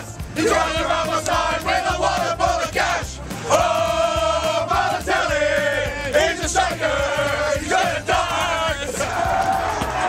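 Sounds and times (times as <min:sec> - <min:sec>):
crowd chanting: 0:00.0 - 0:10.0.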